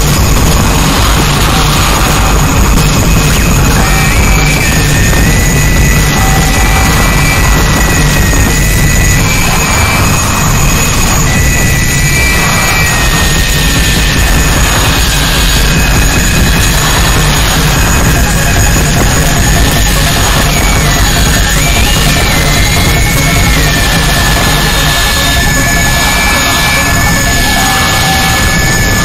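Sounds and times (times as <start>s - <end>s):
harsh noise wall: 0.0s - 29.0s
thin high whistle: 3.8s - 13.8s.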